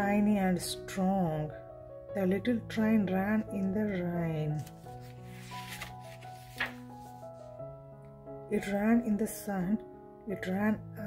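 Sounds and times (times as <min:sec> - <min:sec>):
soft background music: 0:00.0 - 0:11.0
book page turning: 0:04.6 - 0:07.5.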